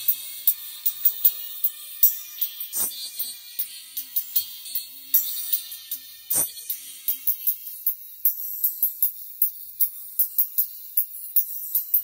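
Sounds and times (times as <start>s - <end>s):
thin treble-only music: 0.0s - 12.0s.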